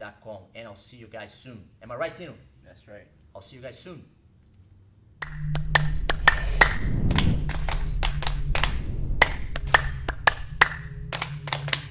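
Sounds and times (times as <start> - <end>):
low sustained tones: 5.2 - 11.9
sharp clap-like percussive hits: 5.2 - 11.9.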